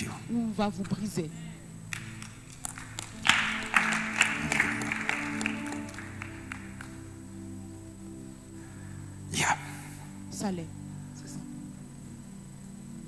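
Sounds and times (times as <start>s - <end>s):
music with sustained chords: 0.0s - 13.0s
congregation applause: 1.9s - 7.2s.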